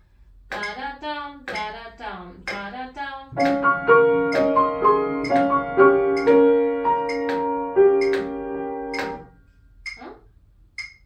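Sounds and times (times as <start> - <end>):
grand piano playing: 3.3 - 9.3
woman sounding syllables: 9.9 - 10.3.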